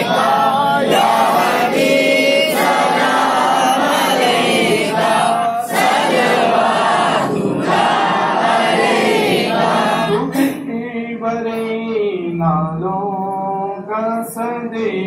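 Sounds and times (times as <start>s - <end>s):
many voices chanting together: 0.0s - 10.6s.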